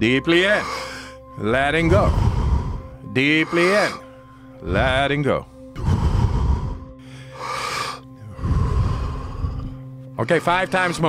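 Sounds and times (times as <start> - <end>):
soft music drone: 0.0 - 11.0
person blowing breath out: 5.8 - 9.8.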